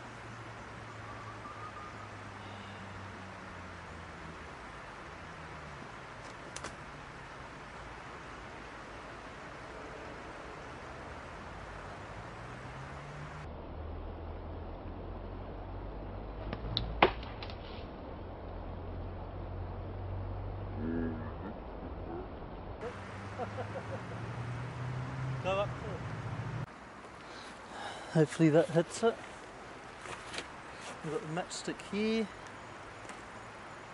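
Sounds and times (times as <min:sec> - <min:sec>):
low steady rumble: 0:13.3 - 0:23.7
sharp crack: 0:16.4 - 0:17.9.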